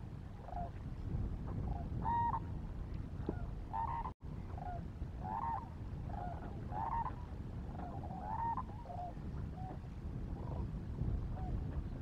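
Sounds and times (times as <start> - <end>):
distant waterfowl calling: 3.7 - 7.2.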